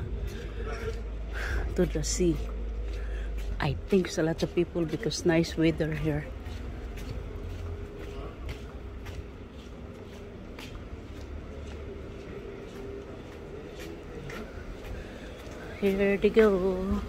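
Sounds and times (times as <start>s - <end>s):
wind rumble on microphone: 0.0s - 1.8s.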